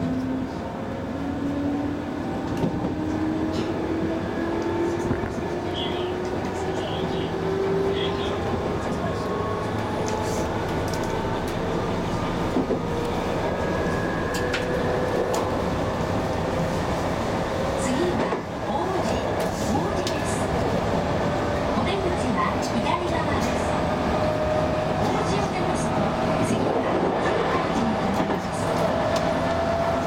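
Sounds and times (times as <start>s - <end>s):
electric train humming: 0.0s - 30.0s.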